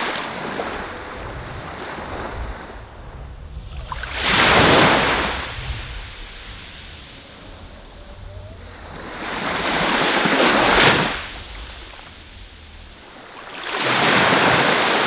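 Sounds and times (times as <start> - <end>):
waves breaking on shore: 0.0 - 15.0
low rumble: 0.6 - 14.0.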